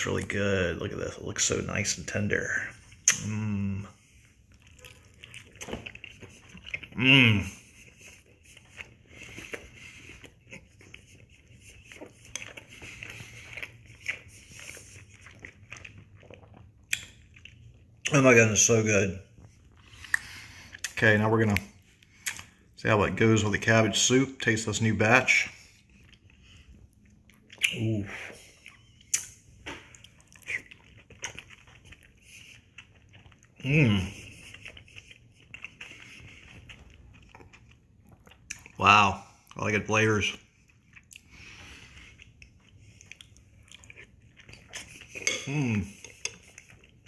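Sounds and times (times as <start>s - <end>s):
person chewing: 1.6s - 18.6s, 19.2s - 22.7s, 25.3s - 38.8s, 40.3s - 47.0s
mouth clicks: 3.0s - 3.5s.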